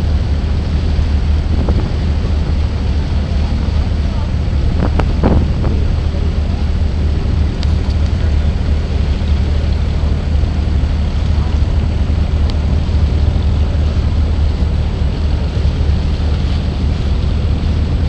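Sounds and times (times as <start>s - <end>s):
boat engine drone: 0.0s - 18.0s
rushing water: 0.0s - 18.0s
wind: 0.0s - 18.0s.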